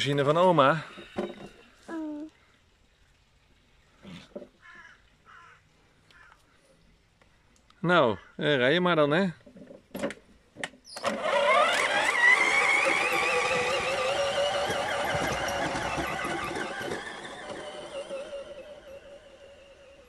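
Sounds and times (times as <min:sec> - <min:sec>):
cordless drill motor whining: 0:00.2 - 0:01.6, 0:10.9 - 0:20.0.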